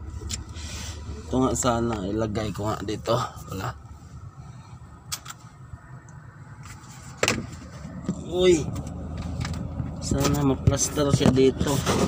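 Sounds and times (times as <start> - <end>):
car rumble: 0.0 - 12.0.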